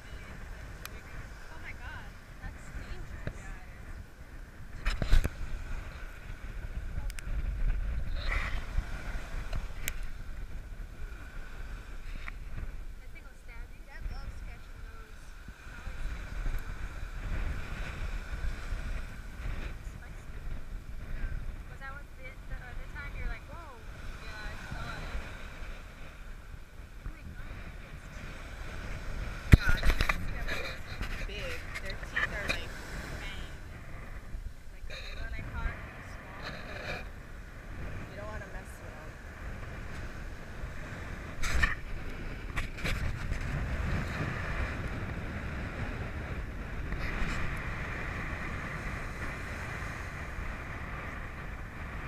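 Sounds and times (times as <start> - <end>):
surf washing up beach: 0.0 - 52.0
wind buffeting microphone: 0.0 - 52.0
faint voices: 6.7 - 10.1, 27.0 - 37.2.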